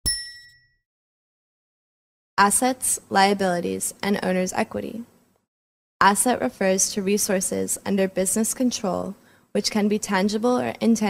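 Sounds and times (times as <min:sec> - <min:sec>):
bright metallic ding: 0:00.0 - 0:00.8.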